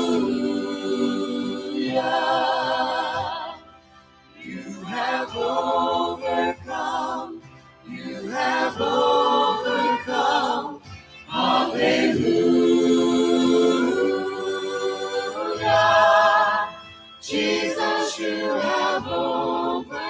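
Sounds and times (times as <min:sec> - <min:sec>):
choir singing worship song: 0:00.0 - 0:20.0.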